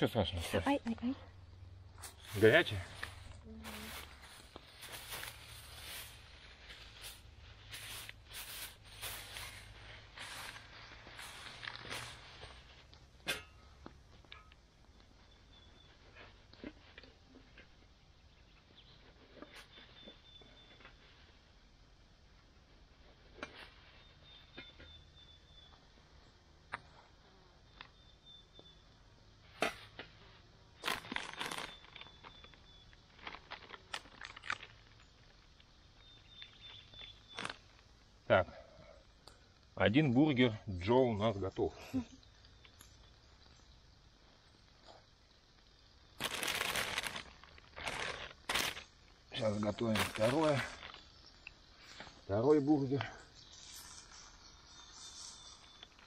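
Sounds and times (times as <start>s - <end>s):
plastic bags crinkling: 30.8s - 32.5s, 33.1s - 34.8s, 46.2s - 48.9s, 49.9s - 51.0s.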